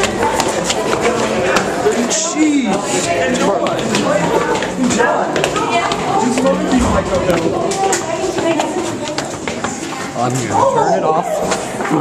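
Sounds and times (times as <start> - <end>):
footsteps on stairs: 0.0 - 10.2
voices: 0.0 - 12.0.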